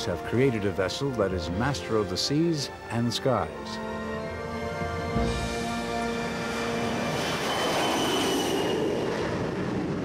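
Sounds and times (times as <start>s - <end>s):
jet engine at full power: 5.0s - 10.0s.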